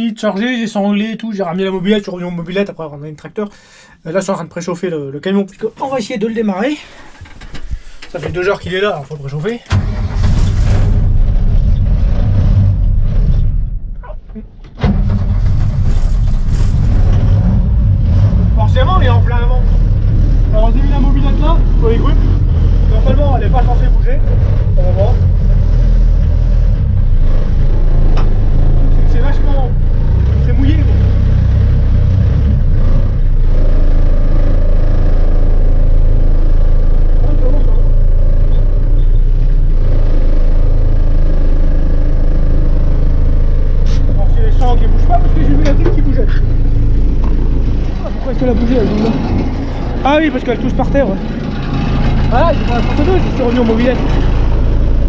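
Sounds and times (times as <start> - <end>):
diesel truck engine running: 9.7 - 55.0.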